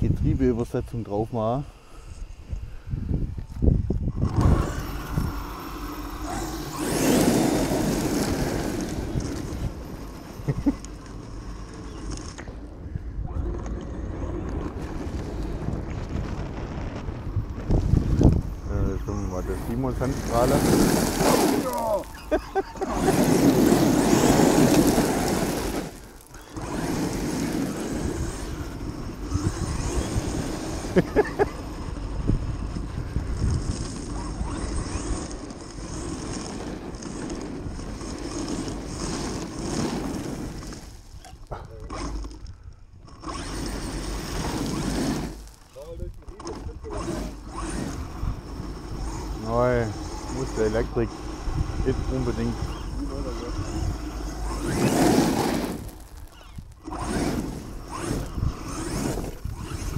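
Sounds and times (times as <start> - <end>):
toy truck driving over gravel: 3.4 - 59.9.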